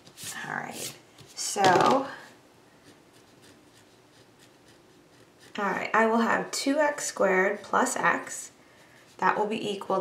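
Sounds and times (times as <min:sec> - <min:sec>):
pencil scratching on paper: 0:02.8 - 0:10.0.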